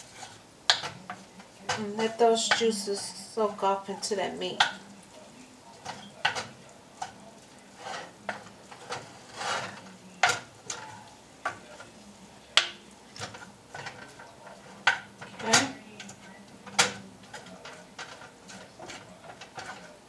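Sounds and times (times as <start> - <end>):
light sizzle: 0.0 - 20.0
wooden spatula scraping skillet: 0.0 - 20.0.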